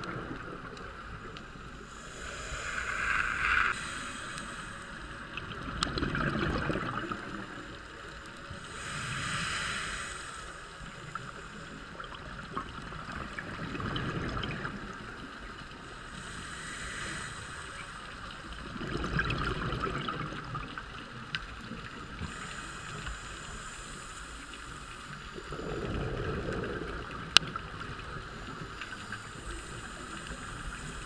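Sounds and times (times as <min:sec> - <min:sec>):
exhaled bubbles underwater: 0:00.0 - 0:09.2, 0:10.8 - 0:22.6, 0:25.1 - 0:31.0
regulator inhale hiss: 0:01.3 - 0:05.8, 0:07.0 - 0:13.9, 0:14.7 - 0:18.7, 0:21.8 - 0:27.0, 0:28.2 - 0:31.0.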